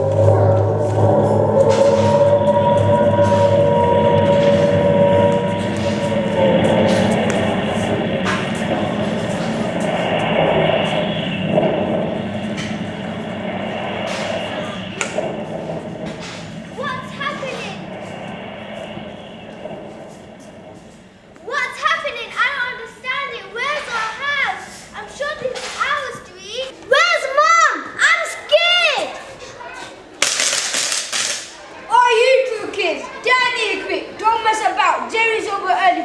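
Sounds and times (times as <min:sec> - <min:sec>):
child's voice: 0:21.4 - 0:30.0.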